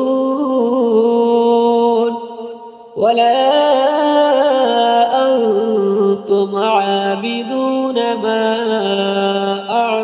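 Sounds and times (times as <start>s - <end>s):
person chanting melodic recitation: 0.0s - 10.0s.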